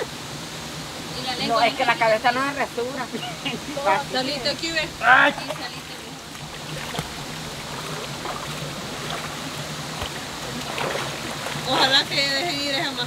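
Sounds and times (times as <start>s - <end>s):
stream running over stones: 0.0s - 13.0s.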